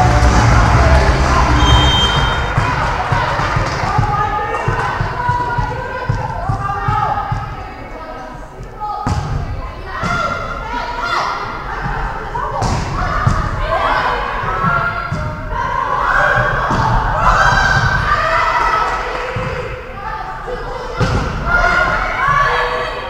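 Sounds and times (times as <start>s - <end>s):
players' voices echoing in hall: 0.0s - 23.0s.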